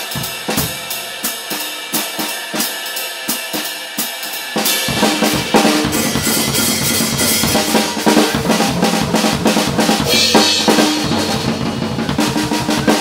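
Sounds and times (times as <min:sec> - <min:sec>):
drum break: 0:00.0 - 0:13.0
swing time on cymbals: 0:00.0 - 0:13.0.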